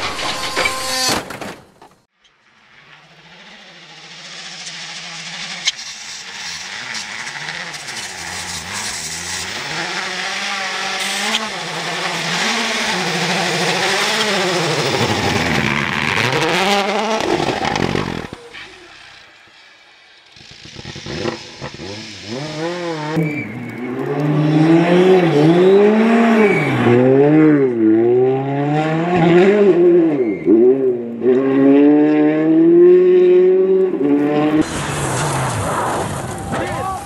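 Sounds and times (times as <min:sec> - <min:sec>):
rally car engine revving: 0:02.8 - 0:19.4, 0:20.3 - 0:36.4.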